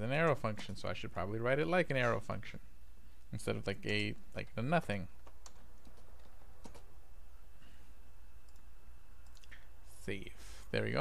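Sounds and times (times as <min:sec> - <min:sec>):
steady low hum: 0:00.0 - 0:11.0
keyboard keystrokes and clicks: 0:05.2 - 0:06.9.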